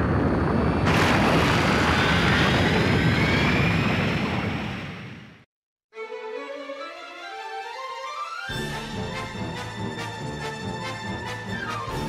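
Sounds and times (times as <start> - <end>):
rising whine: 0.0 - 5.4.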